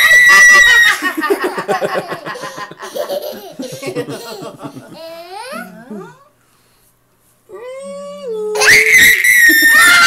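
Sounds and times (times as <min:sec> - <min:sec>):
woman laughing: 0:00.2 - 0:05.0
toddler laughing: 0:01.6 - 0:05.9.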